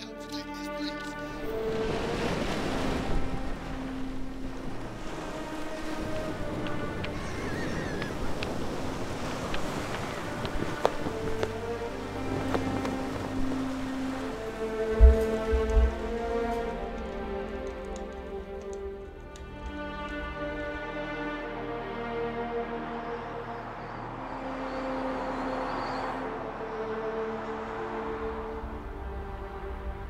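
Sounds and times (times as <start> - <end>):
soft music with held notes: 0.0 - 30.0
surf on a shingle beach: 0.3 - 17.8
low thumps: 14.9 - 16.3.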